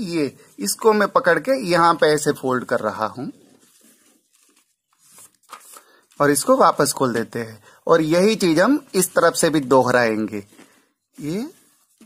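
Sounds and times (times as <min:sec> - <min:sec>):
paper rustling and crinkling: 0:02.1 - 0:07.4, 0:08.1 - 0:12.0.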